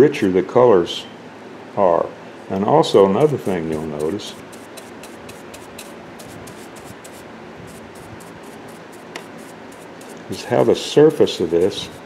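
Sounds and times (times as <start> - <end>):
paintbrush brushing varnish on wood: 3.0 - 12.0.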